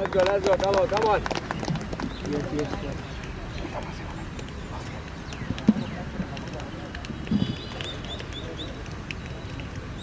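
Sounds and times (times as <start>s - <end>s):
outdoor ambience: 0.0s - 10.0s.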